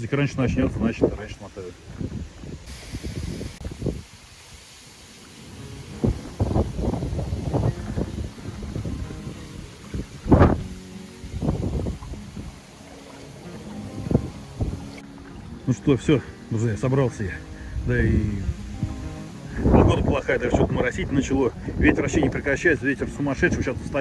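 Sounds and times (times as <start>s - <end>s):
wind buffeting microphone: 0.0s - 4.6s, 5.4s - 15.6s, 17.4s - 24.0s
water lapping at shore: 1.2s - 24.0s.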